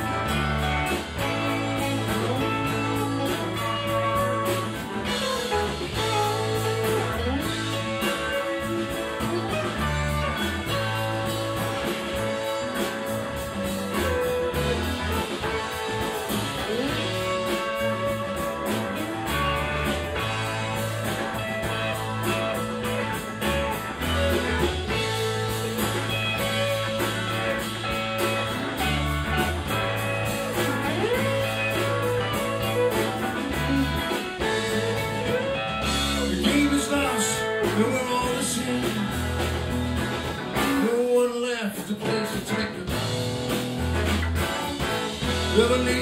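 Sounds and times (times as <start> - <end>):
lead guitar bending notes: 0.0 - 40.8, 42.8 - 46.0
live rock band playing: 0.0 - 46.0.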